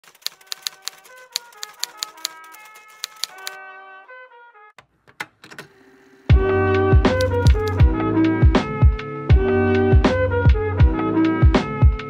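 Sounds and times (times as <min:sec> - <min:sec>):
sharp clacking clicks: 0:00.0 - 0:03.6, 0:07.1 - 0:07.8.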